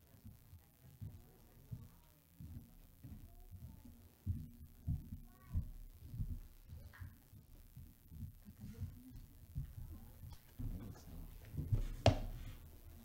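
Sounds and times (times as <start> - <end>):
footsteps on a stage: 0.0 - 13.0.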